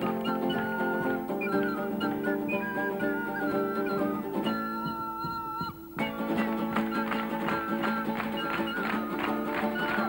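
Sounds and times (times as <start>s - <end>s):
nylon-string guitar chords: 0.0s - 10.0s
whistle-like wind instrument melody: 0.0s - 10.0s.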